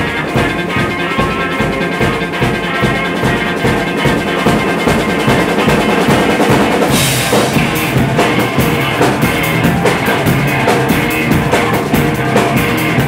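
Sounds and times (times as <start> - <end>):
drum kit beat: 0.0 - 13.0
live band music: 0.0 - 13.0.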